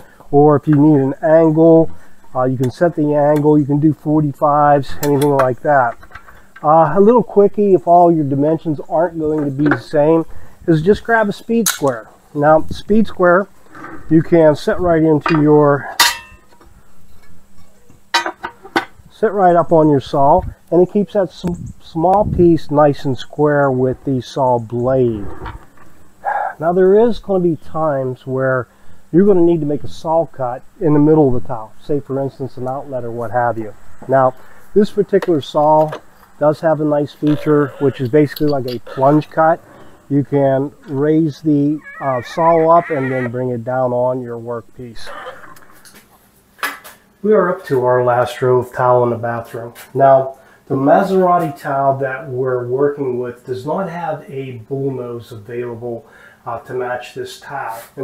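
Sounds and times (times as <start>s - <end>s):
objects set down on saw table: 45.9s - 47.0s.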